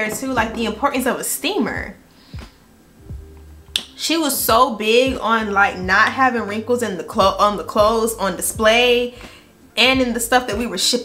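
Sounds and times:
soft low knocks: 1.8 - 3.6.

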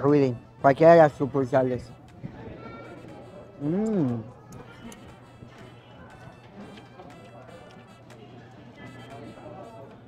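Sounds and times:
faint background music: 0.0 - 10.0
man humming mmm: 3.6 - 4.3.

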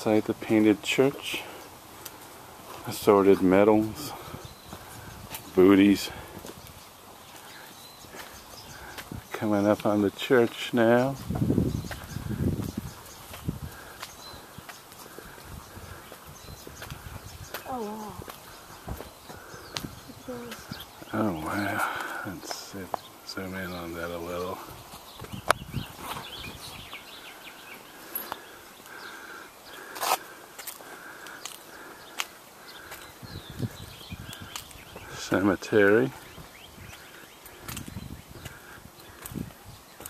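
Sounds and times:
distant bird calls: 0.0 - 40.0
footsteps on paved path: 0.0 - 40.0
microphone handling rumble: 11.2 - 13.7.

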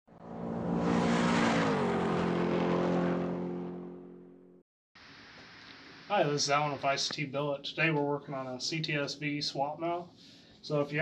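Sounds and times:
engine running hard: 0.1 - 4.6.

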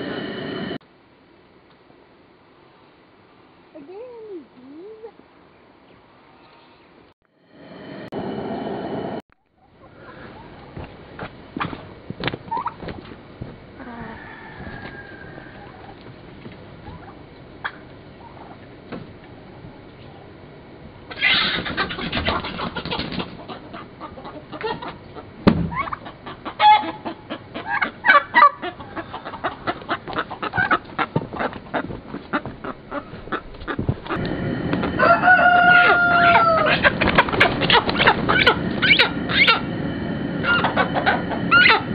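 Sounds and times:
chickens squawking and clucking: 9.7 - 10.7, 13.8 - 16.2, 16.8 - 18.6, 21.1 - 41.9.

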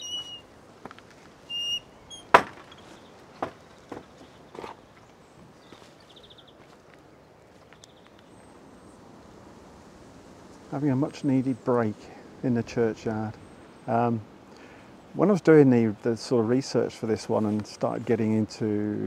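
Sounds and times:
small birds calling: 0.0 - 9.5, 10.4 - 16.9
sharp knock: 2.3 - 2.7
footsteps on gravel: 2.4 - 7.8.

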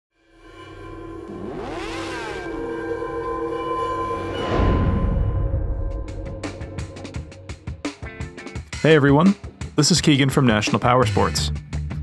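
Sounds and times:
music: 0.1 - 12.0
synthesized drone: 0.2 - 7.9.

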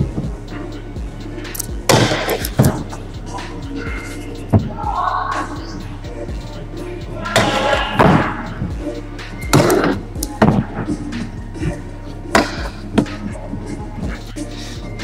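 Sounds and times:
background music: 0.0 - 15.0
steady low hum: 0.0 - 15.0
scooter wheels hitting and grinding rails: 1.8 - 3.0, 9.4 - 10.8, 12.3 - 13.2.

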